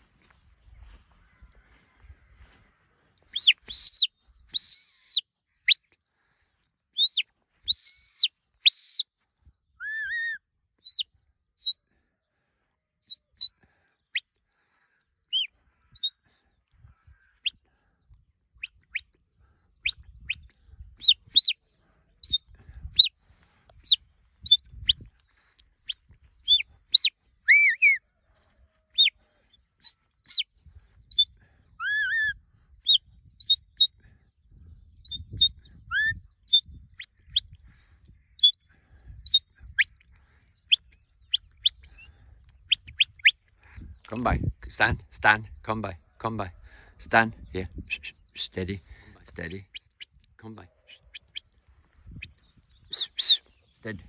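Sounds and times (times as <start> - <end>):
small birds chirping: 0.0 - 54.0.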